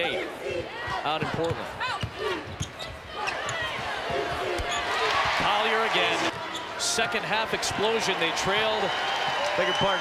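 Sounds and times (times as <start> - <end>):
crowd noise: 0.0 - 10.0.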